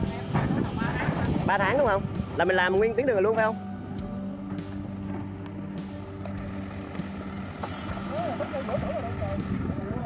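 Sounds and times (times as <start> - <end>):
engine running with low hum: 0.0 - 10.0
voice: 8.1 - 10.0.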